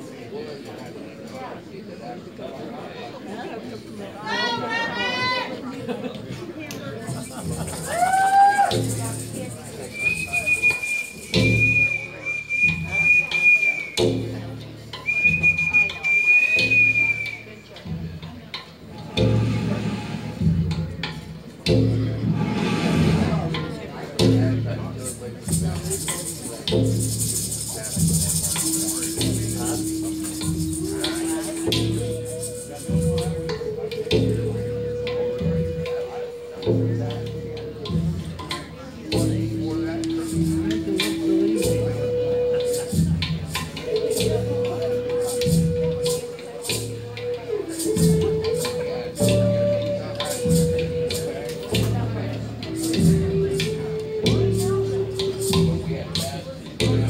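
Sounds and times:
low sounds: 0:07.5 - 0:57.0
flute playing long high notes: 0:07.8 - 0:14.3, 0:15.0 - 0:17.7, 0:19.0 - 0:20.4, 0:28.4 - 0:38.1, 0:38.8 - 0:56.0.

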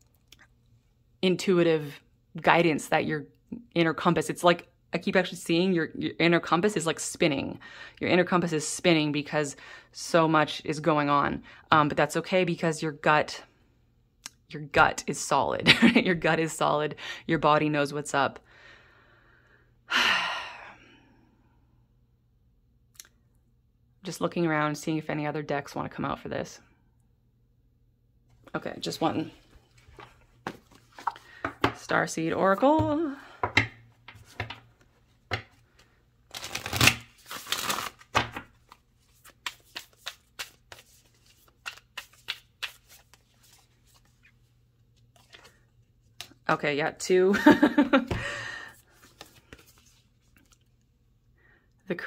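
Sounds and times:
cards being shuffled: 0:29.7 - 0:31.8, 0:34.1 - 0:44.4, 0:45.0 - 0:46.4, 0:48.9 - 0:50.6
cards snapping and tapping: 0:41.6 - 0:43.0
person sighing: 0:48.1 - 0:48.8.

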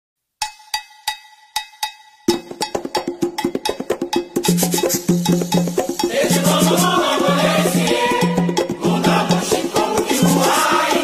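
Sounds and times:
bell-like percussion beat: 0:00.4 - 0:11.0
samba percussion section: 0:02.2 - 0:11.0.

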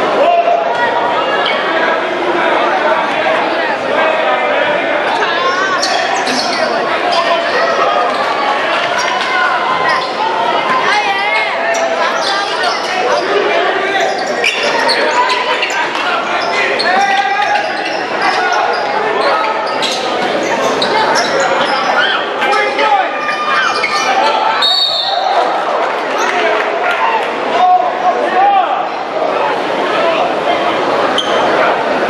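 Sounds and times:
crowd voices: 0:00.0 - 0:32.0
players shouting: 0:00.0 - 0:32.0
referee's whistle: 0:24.6 - 0:25.3.

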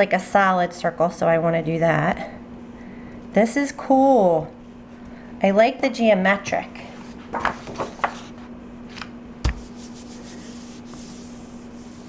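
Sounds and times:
steady low hum: 0:00.0 - 0:12.0
palm rustling on paper: 0:06.9 - 0:12.0
paper thump on plate: 0:07.3 - 0:08.3.

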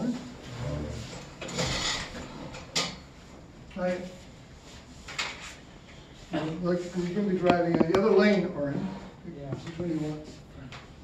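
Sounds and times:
objects scraping and rustling: 0:00.4 - 0:10.5.

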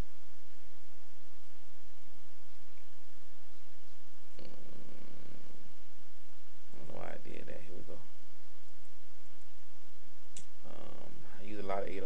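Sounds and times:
steady low hum: 0:00.0 - 0:12.0
person murmuring: 0:10.6 - 0:11.1.

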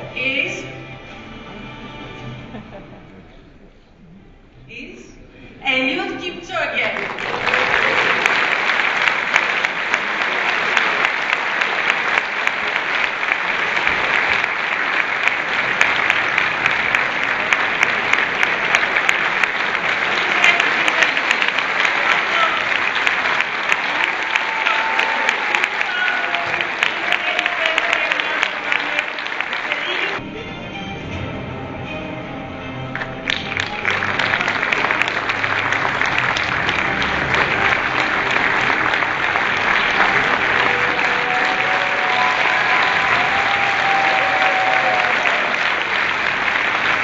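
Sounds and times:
audience applauding: 0:07.0 - 0:30.2, 0:33.0 - 0:47.0.

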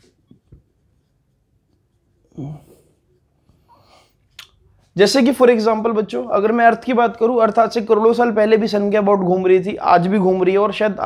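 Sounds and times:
breathy vocal sound: 0:02.3 - 0:03.0.

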